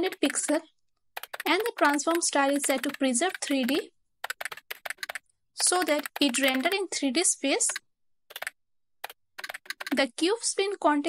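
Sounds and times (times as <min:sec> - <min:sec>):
computer keyboard typing: 0:00.0 - 0:06.9, 0:07.6 - 0:10.0.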